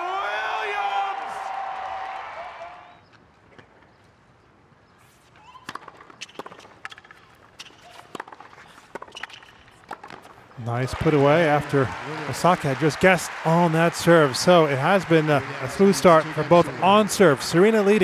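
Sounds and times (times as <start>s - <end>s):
racket striking tennis ball: 5.6s - 10.4s.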